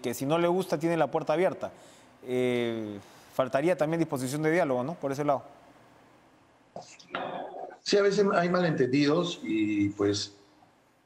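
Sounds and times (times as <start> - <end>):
man speaking: 0.0 - 5.5, 7.8 - 10.4.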